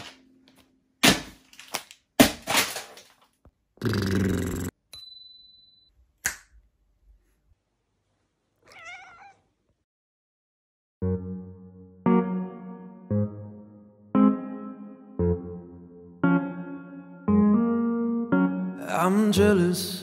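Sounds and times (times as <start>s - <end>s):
cat meowing: 8.6s - 9.5s.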